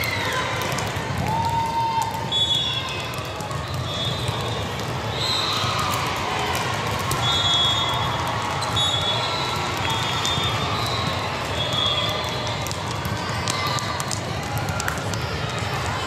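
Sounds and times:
echoing crowd chatter: 0:00.0 - 0:16.0.

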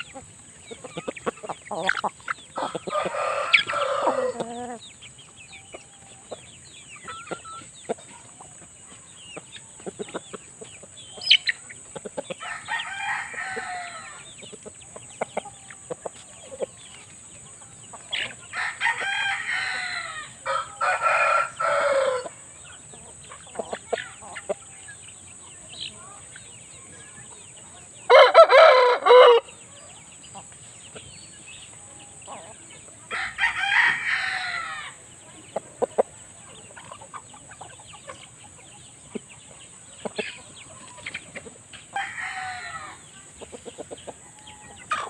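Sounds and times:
roosters crowing: 0:00.0 - 0:07.8, 0:12.2 - 0:14.5, 0:17.5 - 0:24.6, 0:28.0 - 0:30.0, 0:31.8 - 0:35.2, 0:40.2 - 0:45.0.

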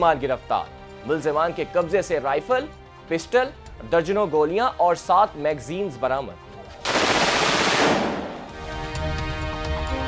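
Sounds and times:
rapid rifle fire: 0:06.9 - 0:08.5.

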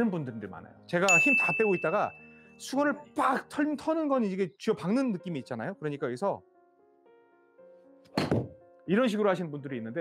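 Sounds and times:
faint background music: 0:00.0 - 0:10.0.

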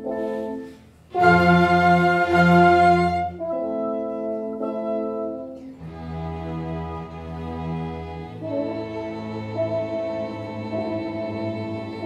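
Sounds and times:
string orchestra playing chords: 0:00.0 - 0:12.0.

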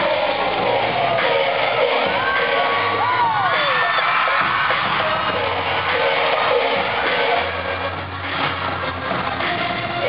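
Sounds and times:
fans screaming and cheering: 0:00.0 - 0:10.0
pop dance music over sound system: 0:00.0 - 0:10.0.

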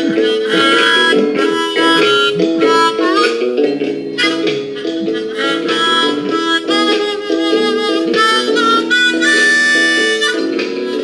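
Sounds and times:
harmonica playing chords: 0:00.0 - 0:11.0.

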